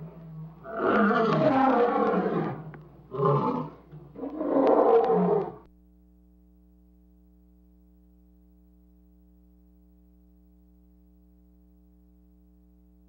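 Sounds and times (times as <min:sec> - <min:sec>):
lion roaring: 0:00.0 - 0:05.7
faint electrical hum: 0:00.0 - 0:13.0.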